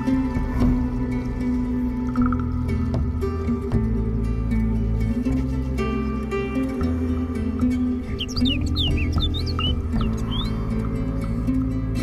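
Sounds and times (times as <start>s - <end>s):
instrumental background music: 0.0s - 12.0s
bird chirping: 8.0s - 10.7s.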